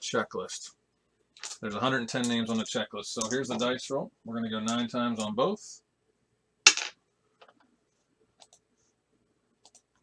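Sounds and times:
dice clattering on hard surface: 6.7 - 7.0.

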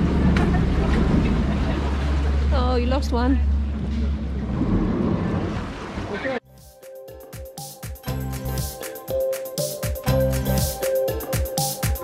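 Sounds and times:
water wash: 0.0 - 6.4
boat engine rumble: 0.0 - 6.6.

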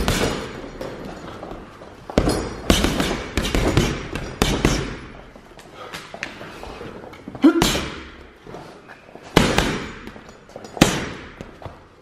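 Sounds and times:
punches hitting heavy bag: 0.0 - 0.9, 2.1 - 5.2, 7.5 - 8.2, 9.3 - 11.6.

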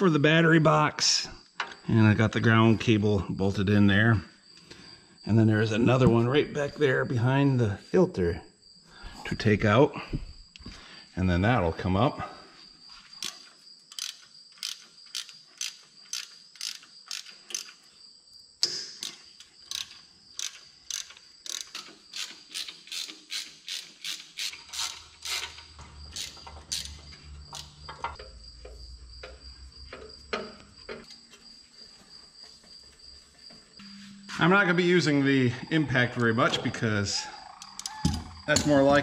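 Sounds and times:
high insect chirring: 12.6 - 39.0
ratchet wrench clicking: 13.2 - 17.8, 18.6 - 28.2.

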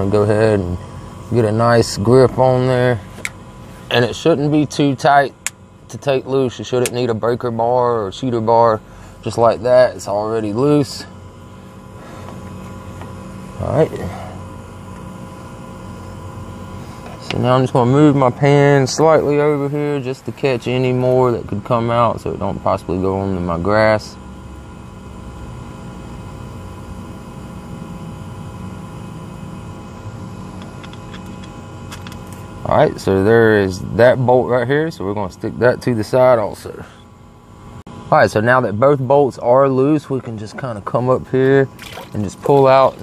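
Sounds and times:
low machine hum: 0.0 - 43.0.

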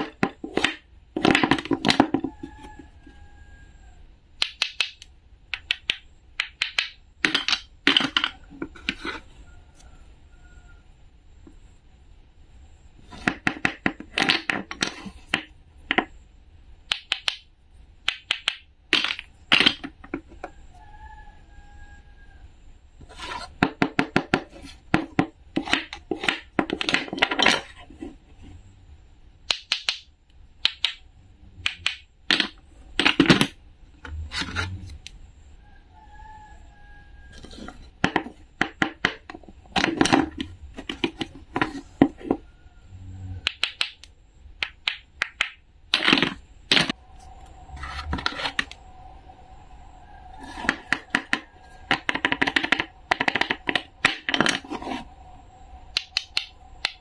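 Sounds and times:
toy food pieces clicking: 4.4 - 8.4, 16.9 - 20.1, 29.5 - 31.0, 31.6 - 33.6, 43.4 - 46.9, 55.9 - 57.0.

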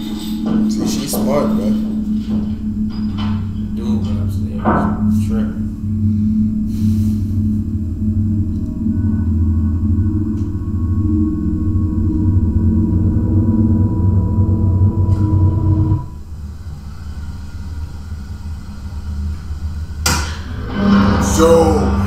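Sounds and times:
low droning with held tones: 0.0 - 22.0
quiet low hum: 0.0 - 22.0.

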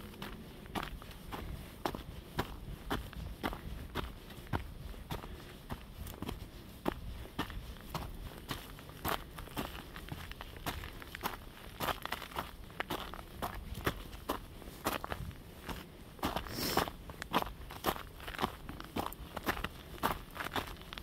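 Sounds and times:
footsteps on a trail: 0.0 - 21.0.

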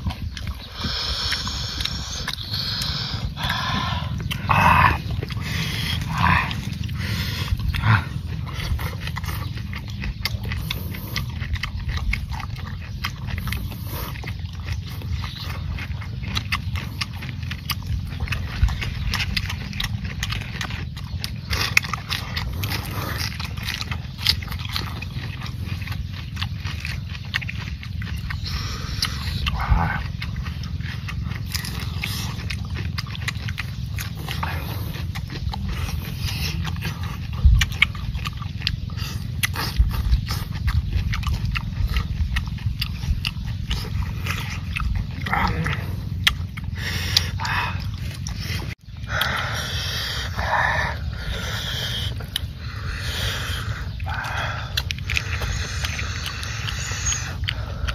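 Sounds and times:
steady low rumble: 0.0 - 57.9
wet chewing: 0.0 - 57.9.

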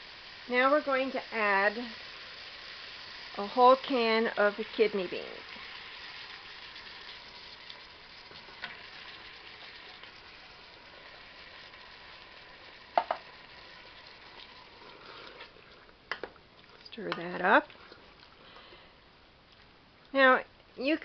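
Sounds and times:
food sizzling in oil: 0.0 - 18.6.

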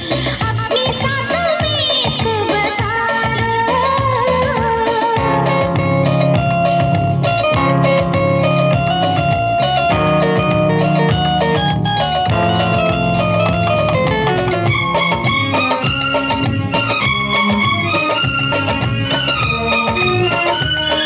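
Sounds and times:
bass and drums: 0.0 - 21.0
electric guitar quick notes: 5.2 - 21.0.

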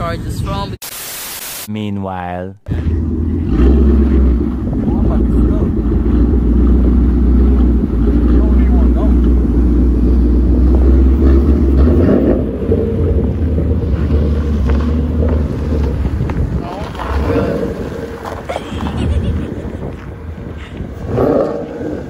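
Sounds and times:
car engine low rumble: 2.6 - 22.0.

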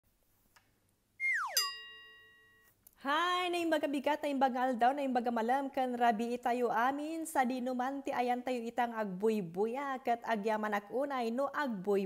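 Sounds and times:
whistle tone sliding down: 1.2 - 2.0
bell-like chime: 1.6 - 2.6.

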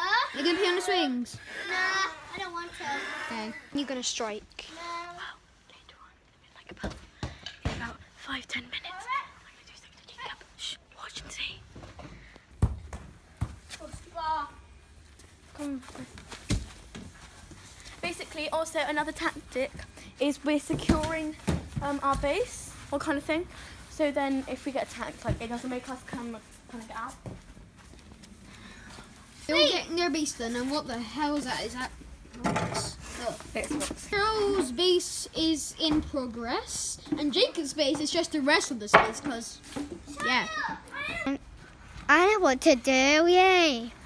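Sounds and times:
girl whispering: 5.2 - 7.0, 8.3 - 11.7
footsteps on paving slabs: 27.1 - 29.4.

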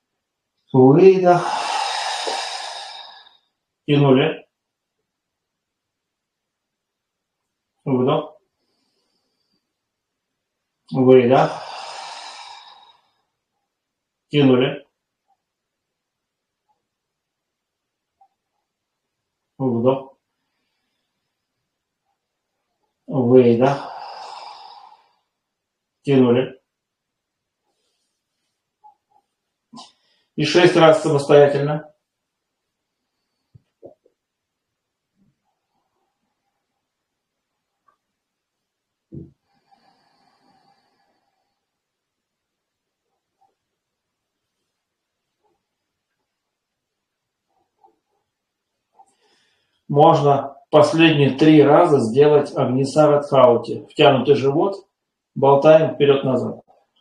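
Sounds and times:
person breathing deeply: 1.0 - 3.5, 11.2 - 13.3, 23.6 - 25.4, 39.1 - 41.8, 49.0 - 49.9
man exhaling: 1.2 - 3.4, 11.4 - 13.1, 23.7 - 25.3.

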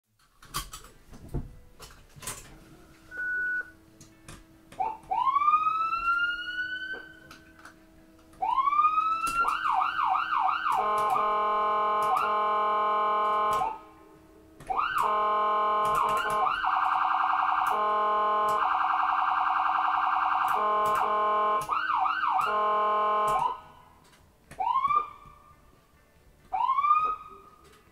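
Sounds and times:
short beep: 3.1 - 3.7
electronic siren cycling tones: 4.8 - 7.3, 8.4 - 13.9, 14.6 - 23.7, 24.6 - 25.3, 26.6 - 27.4.

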